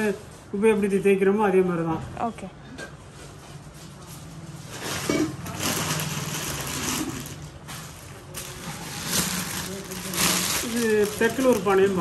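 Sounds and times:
metal vessels moved on tiled floor: 0:04.6 - 0:12.0.

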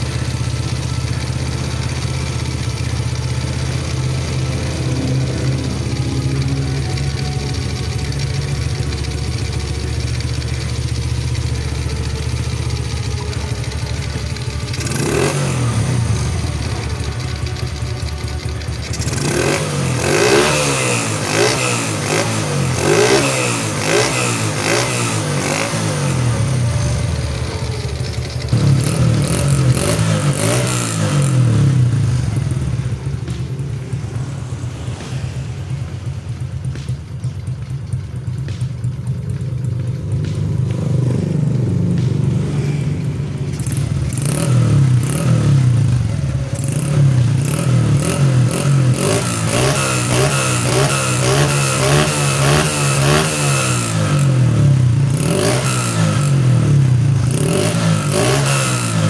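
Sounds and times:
motorcycle engine idling: 0:00.0 - 0:59.0
motorcycle engine revving: 0:00.0 - 0:59.0.

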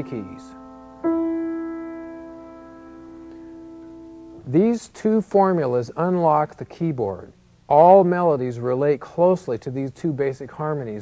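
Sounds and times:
piano chord ringing: 0:00.0 - 0:04.6.

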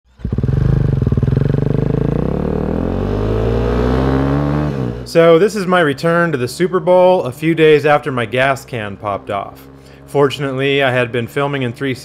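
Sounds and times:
motorcycle engine accelerating: 0:00.1 - 0:12.0.

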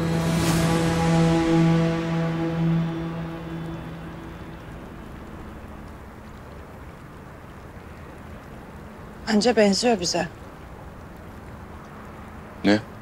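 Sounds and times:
held low music note: 0:00.0 - 0:06.9
faint background hiss: 0:00.0 - 0:13.0.

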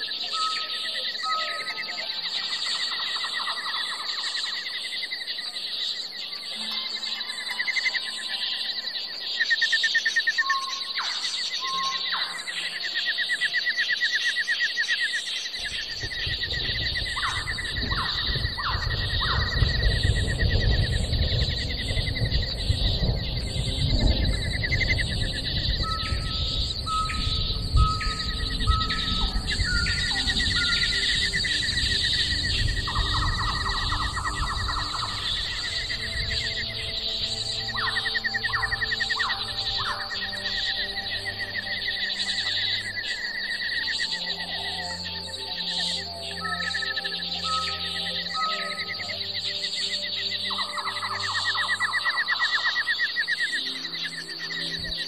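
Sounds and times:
birds chirping and trilling: 0:00.0 - 0:55.0
high-pitched drone: 0:15.6 - 0:55.0
low rushing noise: 0:15.7 - 0:43.4.

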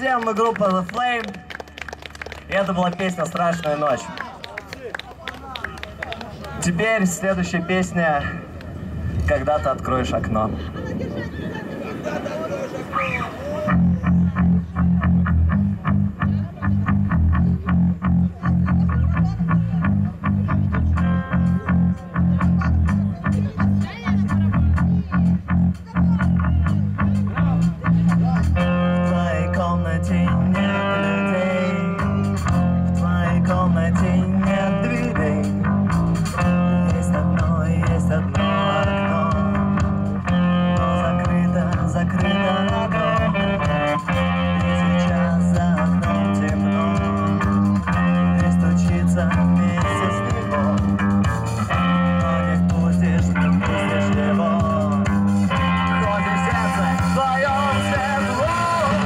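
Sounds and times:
bass guitar: 0:00.0 - 0:04.2, 0:12.8 - 0:59.0
electric guitars: 0:00.0 - 0:05.0, 0:08.2 - 0:59.0.

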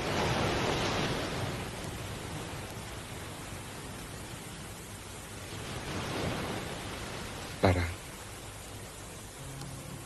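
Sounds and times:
old film soundtrack hiss: 0:00.0 - 0:10.0
sea noise hiss: 0:00.0 - 0:10.0
wave washing on beach: 0:00.0 - 0:10.0.

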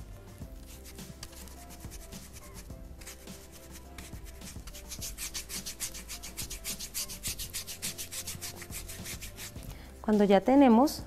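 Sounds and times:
dry paintbrush scrubbing wood: 0:00.6 - 0:09.7.

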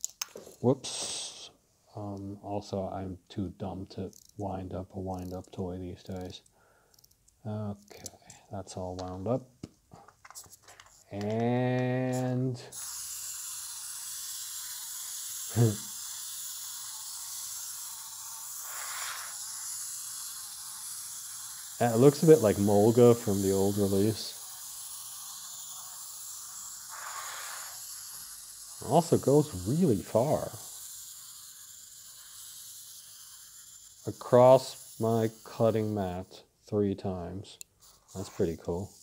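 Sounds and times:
clockwork motor whirring: 0:12.7 - 0:36.2.

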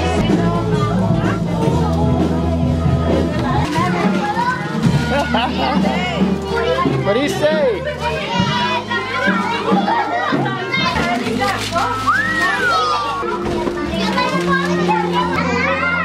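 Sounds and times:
children chattering and calling out: 0:00.0 - 0:16.0
wrapping paper tearing: 0:10.8 - 0:15.4.

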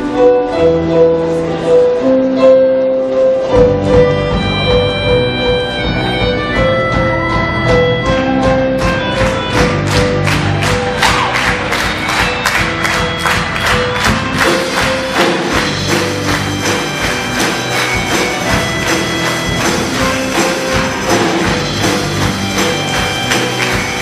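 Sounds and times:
live band playing instrumental music: 0:00.0 - 0:24.0.

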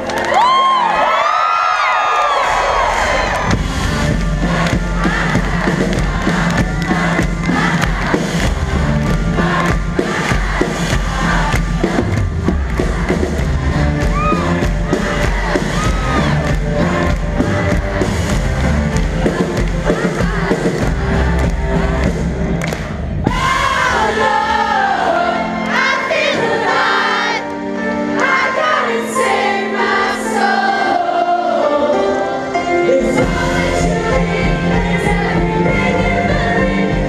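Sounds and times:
audience cheering: 0:00.0 - 0:24.1
pop-rock band playing loudly: 0:03.5 - 0:25.9.

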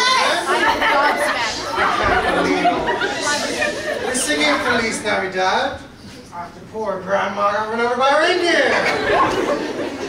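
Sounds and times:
overlapping chatter: 0:00.0 - 0:06.3, 0:08.1 - 0:10.0.

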